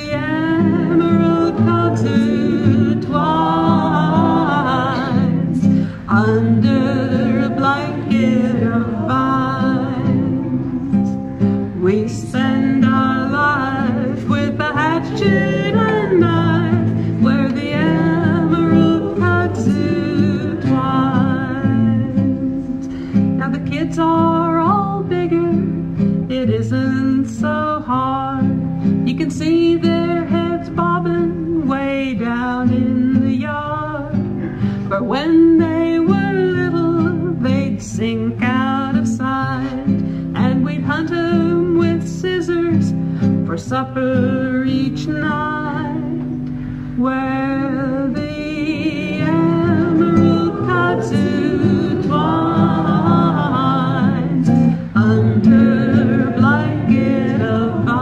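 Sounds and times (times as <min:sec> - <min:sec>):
person singing: 0:00.0 - 0:25.6, 0:47.0 - 0:58.0
acoustic guitar: 0:00.0 - 0:58.0.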